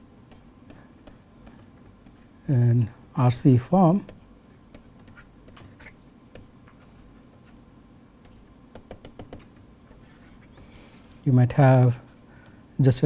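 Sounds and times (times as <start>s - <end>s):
stylus tapping on tablet screen: 8.2s - 10.0s.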